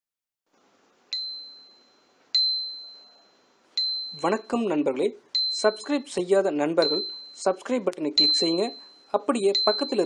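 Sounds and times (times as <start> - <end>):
high-pitched bell ding: 1.1 - 4.4, 6.8 - 7.5, 8.2 - 10.0.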